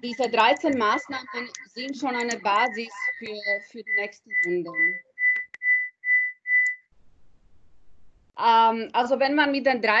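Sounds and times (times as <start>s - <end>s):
high electronic beeping: 0.0s - 6.9s.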